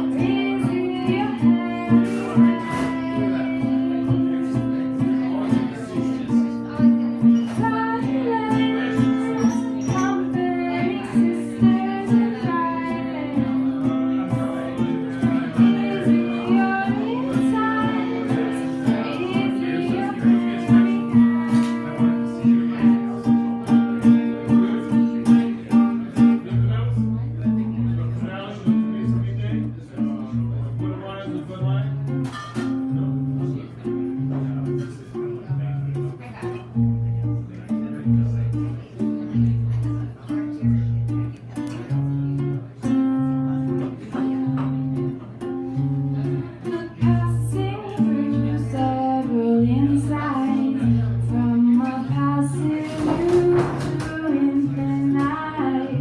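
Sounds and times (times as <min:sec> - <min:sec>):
person singing: 0:00.0 - 0:06.0, 0:07.4 - 0:22.9, 0:47.0 - 0:56.0
acoustic guitar strumming: 0:00.0 - 0:56.0.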